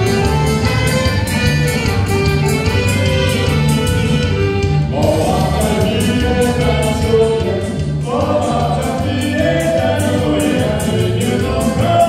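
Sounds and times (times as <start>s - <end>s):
folk dance band playing: 0.0s - 12.0s
voices singing: 4.9s - 12.0s.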